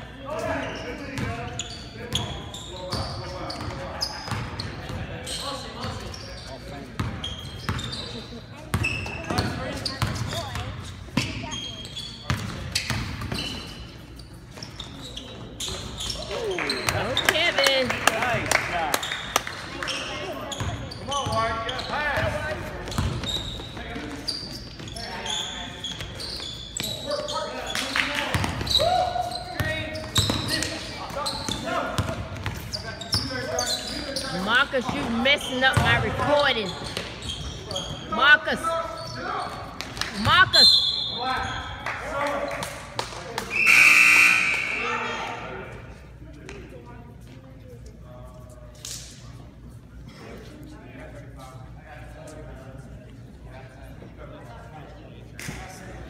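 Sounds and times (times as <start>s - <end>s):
ball bouncing on hardwood court: 8.7s - 11.5s.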